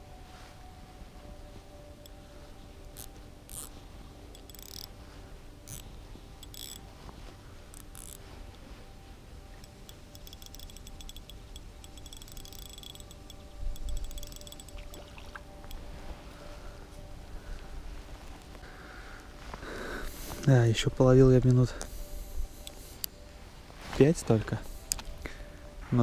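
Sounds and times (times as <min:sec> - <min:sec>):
spinning reel clicking: 0:04.4 - 0:04.9, 0:06.4 - 0:06.8, 0:09.9 - 0:14.8.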